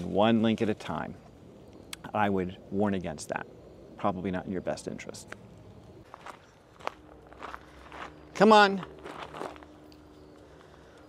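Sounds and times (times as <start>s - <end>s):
footsteps on dry leaves: 6.0s - 10.8s.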